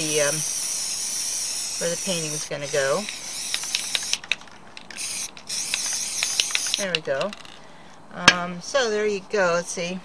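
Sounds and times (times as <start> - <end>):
spray paint can hissing: 0.0 - 7.0
small clicks: 2.1 - 7.6.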